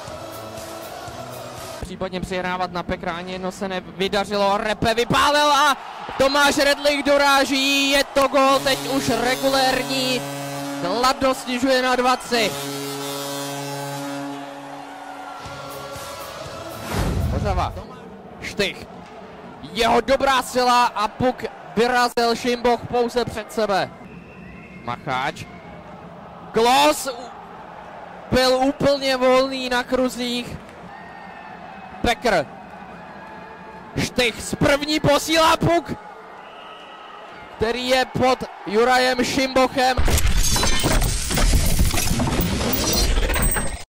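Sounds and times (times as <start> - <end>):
goal horn chord: 8.2 - 17.0
clinking and breaking clatter: 40.0 - 43.8.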